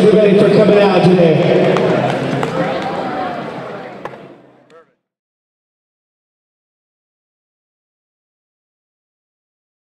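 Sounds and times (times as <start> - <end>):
echoing voices and chatter: 0.0 - 5.0.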